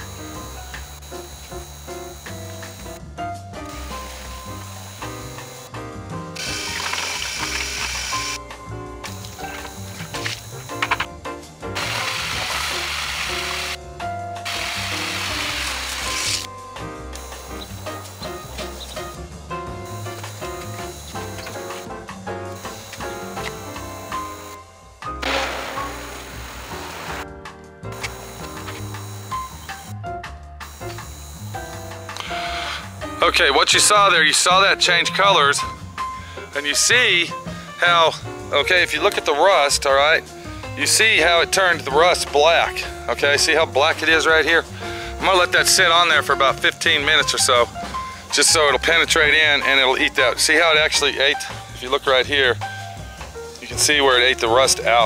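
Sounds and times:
background music with bass line: 0.0s - 55.0s.

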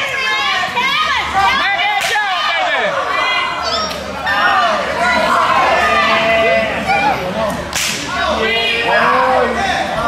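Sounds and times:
audience shouting and calling out: 0.0s - 10.0s.

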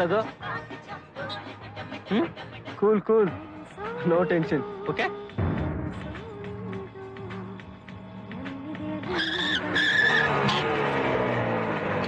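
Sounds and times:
soft background music: 0.0s - 12.0s
tyres screeching: 9.1s - 10.9s.

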